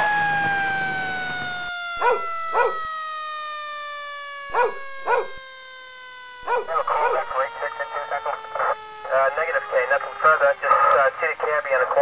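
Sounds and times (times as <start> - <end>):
siren tone falling in pitch: 0.0 - 10.4.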